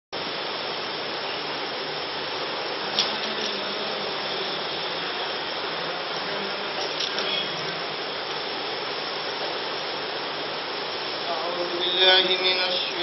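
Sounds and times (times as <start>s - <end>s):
background hiss: 0.2s - 13.0s.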